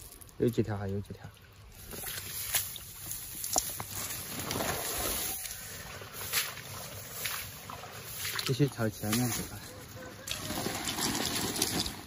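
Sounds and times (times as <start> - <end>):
steps through wet grass: 1.7 - 11.3.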